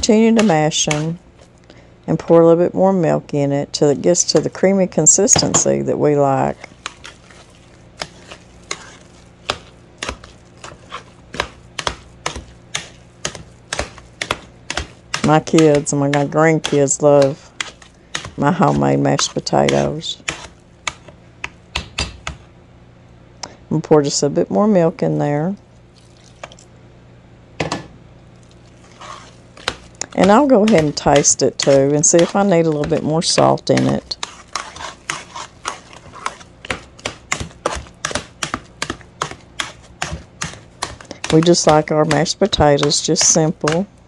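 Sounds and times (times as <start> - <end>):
potato masher knocking metal pot: 0.0 - 1.2, 11.3 - 20.4, 29.6 - 43.9
faint steady hum: 0.0 - 44.0
milk pouring into a pan: 25.9 - 26.6.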